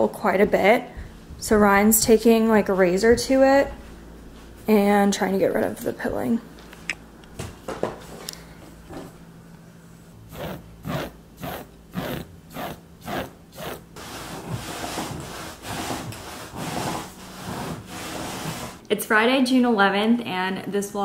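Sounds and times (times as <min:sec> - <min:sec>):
razor scraping fabric cushion: 0:10.3 - 0:18.8.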